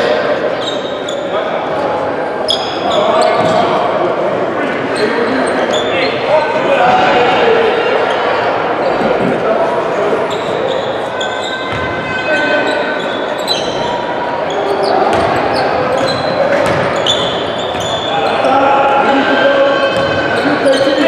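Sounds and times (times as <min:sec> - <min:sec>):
sneaker squeaks: 0:00.4 - 0:01.4, 0:02.4 - 0:03.8, 0:04.8 - 0:06.6, 0:10.2 - 0:21.0
basketball bouncing: 0:11.7 - 0:12.0, 0:15.1 - 0:18.0.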